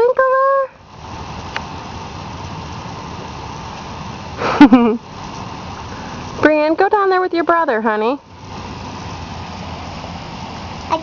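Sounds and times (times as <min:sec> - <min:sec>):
sprinkler water jets hissing: 0:00.0 - 0:11.0.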